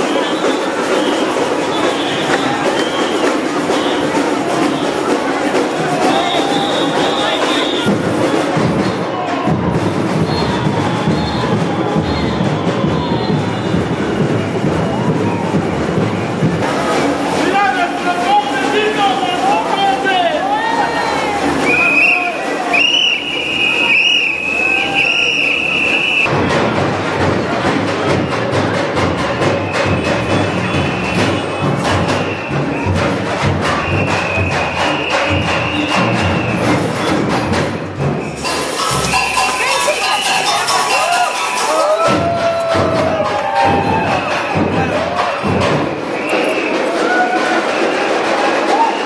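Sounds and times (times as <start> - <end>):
shrill whistle: 0.0 - 4.1, 6.0 - 8.0, 10.2 - 13.8, 21.6 - 26.3, 29.7 - 37.1, 38.2 - 42.1, 46.1 - 48.1, 48.7 - 49.0
samba drum group playing: 0.0 - 49.0
people shouting or singing: 1.4 - 8.0, 38.4 - 49.0.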